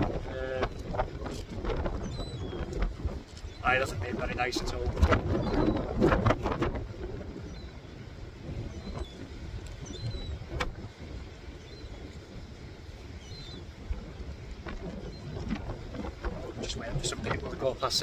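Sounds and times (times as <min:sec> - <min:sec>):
wind buffeting microphone: 0:00.0 - 0:18.0.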